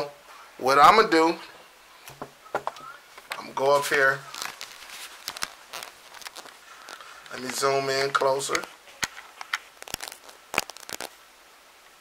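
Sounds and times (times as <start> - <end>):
camera handling clicks and rustles: 4.4 - 11.2.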